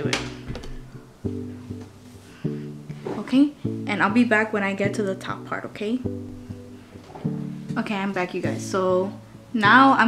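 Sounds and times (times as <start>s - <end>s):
plucked string music: 0.0s - 10.0s.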